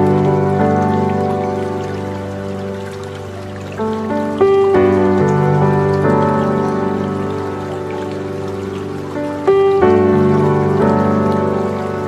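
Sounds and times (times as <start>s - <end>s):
dripping water: 0.0s - 12.0s
slow calm held chords: 0.0s - 12.0s.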